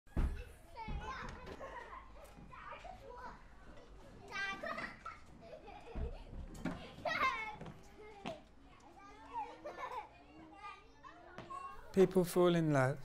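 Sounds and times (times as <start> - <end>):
children chattering and calling out: 0.1 - 12.6.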